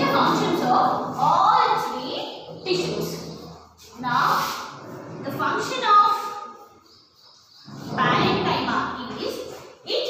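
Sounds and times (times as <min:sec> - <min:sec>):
woman talking: 0:00.0 - 0:06.6, 0:07.9 - 0:10.0.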